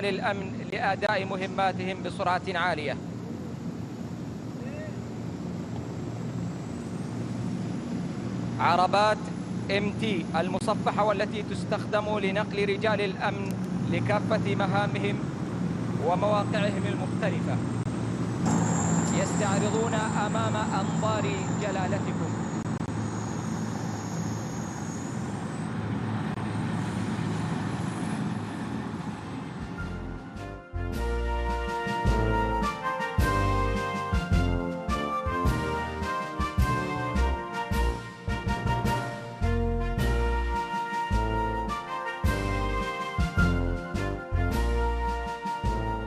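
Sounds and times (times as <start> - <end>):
armoured vehicles engine rumble: 0.0 - 31.5
helicopters flying overhead: 0.0 - 46.0
high turbine whine: 0.0 - 46.0.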